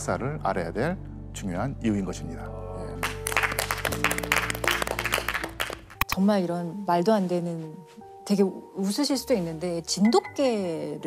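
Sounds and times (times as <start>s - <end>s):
background music: 0.0s - 11.0s
group clapping hands: 3.0s - 6.2s.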